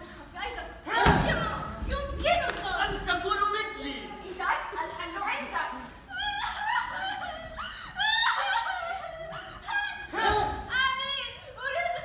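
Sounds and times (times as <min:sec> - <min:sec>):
actors' voices in a hall: 0:00.0 - 0:12.0.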